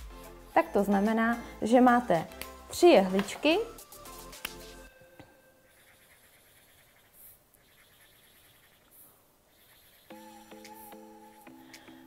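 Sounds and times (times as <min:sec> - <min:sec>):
marker scratching on paper: 0:05.7 - 0:09.0.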